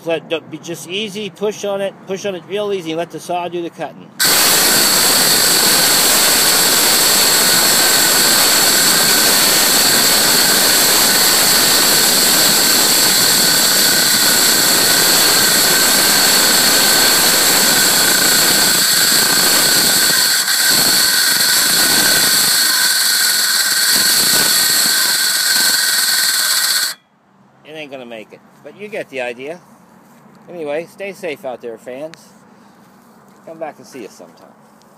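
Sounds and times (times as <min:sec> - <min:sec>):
circular saw cutting wood: 0:04.2 - 0:27.0.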